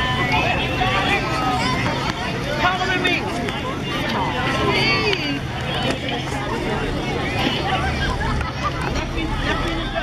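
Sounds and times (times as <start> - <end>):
children's voices: 0.0 - 10.0
crowd chatter: 0.0 - 10.0.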